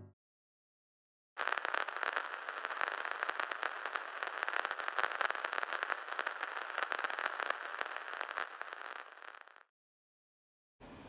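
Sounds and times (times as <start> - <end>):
crackling static: 1.4 - 9.7.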